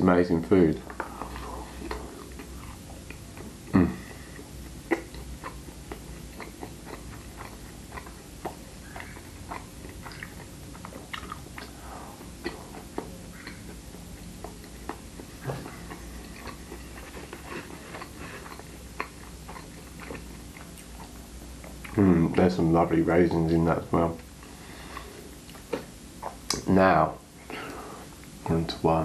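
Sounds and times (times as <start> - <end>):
person chewing close up: 0.8 - 22.6, 24.2 - 26.6.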